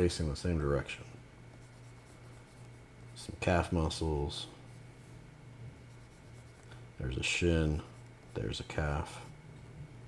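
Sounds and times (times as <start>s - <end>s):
low steady hum: 0.0s - 10.0s
stylus scratching on tablet: 1.5s - 3.3s, 5.8s - 6.7s.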